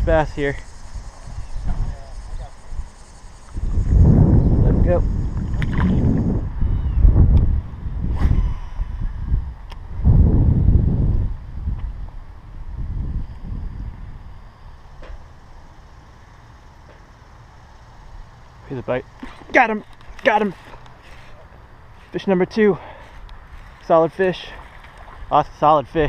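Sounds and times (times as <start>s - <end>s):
wind buffeting microphone: 0.0s - 2.9s, 3.5s - 14.6s.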